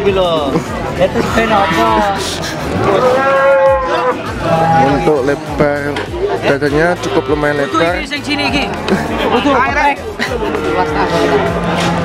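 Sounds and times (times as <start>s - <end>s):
cow mooing: 1.4s - 2.2s, 2.8s - 5.1s, 10.5s - 11.8s.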